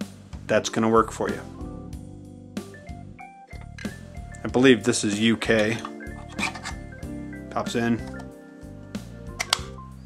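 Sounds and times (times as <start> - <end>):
light plastic clicks: 9.4 - 9.8.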